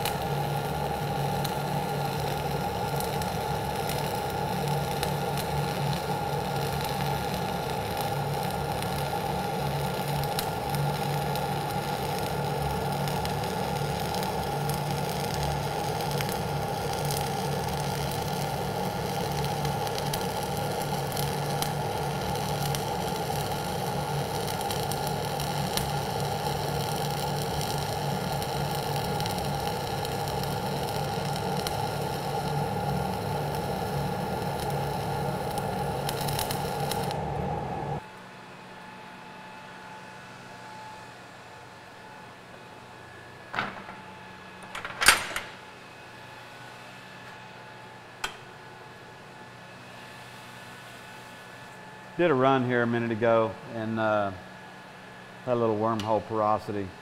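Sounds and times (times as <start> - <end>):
welding arc crackling: 0.0 - 38.0.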